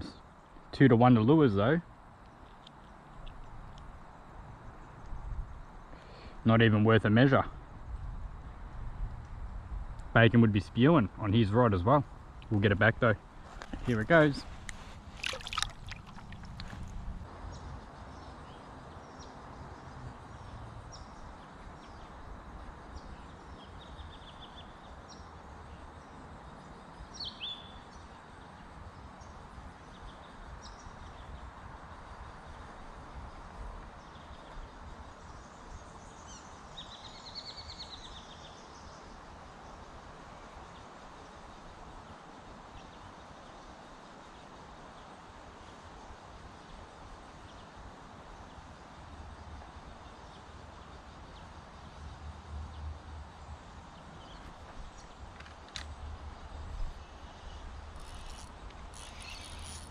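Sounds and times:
riverside ambience: 0.0 - 59.9
birds calling: 10.8 - 19.4
fish splashing into water: 15.1 - 17.0.

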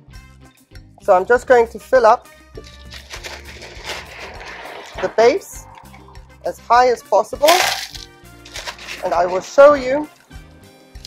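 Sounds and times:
clay granules pouring: 2.6 - 6.3, 7.5 - 9.6.

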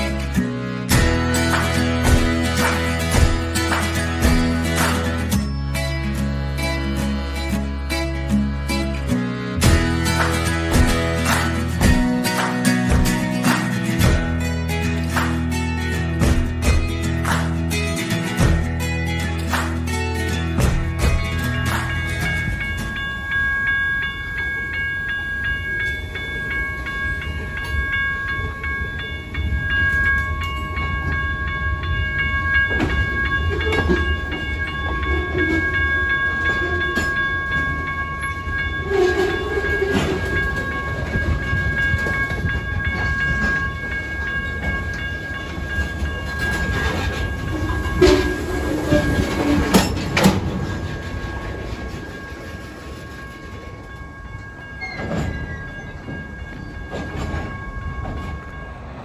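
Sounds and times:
train cars clanking and banging: 0.0 - 59.0
train wheels rumbling on rail: 0.0 - 59.0
steady high ringing tone: 21.0 - 59.0.

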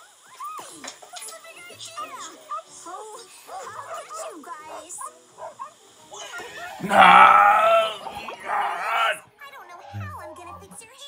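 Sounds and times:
background music: 4.6 - 10.8.

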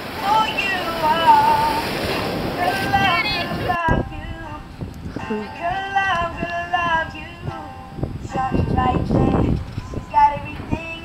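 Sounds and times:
pop song with male singing: 0.2 - 1.8, 2.6 - 11.0.

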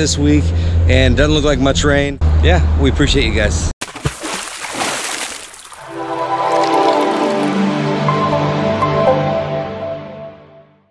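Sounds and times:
water splash sound effect: 3.8 - 7.8
music with held notes: 6.0 - 10.8.

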